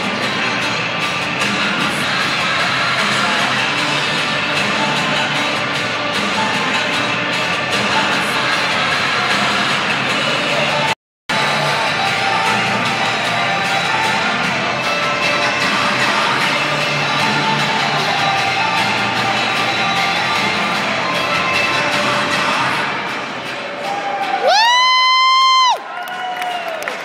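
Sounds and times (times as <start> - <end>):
dance music: 0.0 - 25.8
crowd noise: 0.0 - 27.0
falling cheer: 23.8 - 27.0
spectator high-pitched whoop: 23.9 - 26.9.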